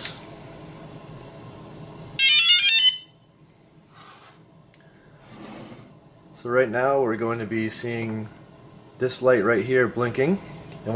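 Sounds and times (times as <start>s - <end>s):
high electronic start-up tones: 2.2s - 3.1s.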